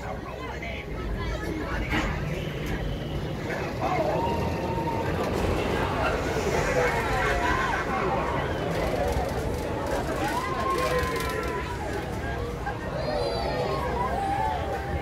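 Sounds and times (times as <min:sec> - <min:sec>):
steady low rumble: 0:04.2 - 0:09.9.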